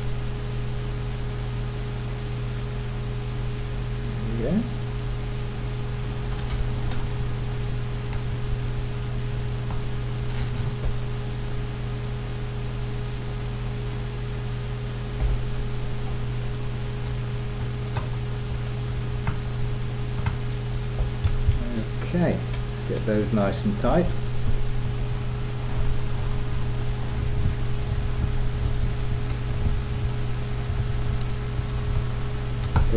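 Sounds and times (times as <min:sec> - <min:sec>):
electrical hum and hiss: 0:00.0 - 0:32.9
small clicks and taps: 0:32.6 - 0:32.9.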